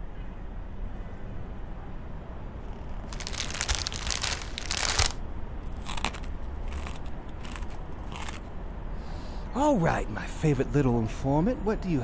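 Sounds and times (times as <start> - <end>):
crunching and rustling: 2.8 - 8.4.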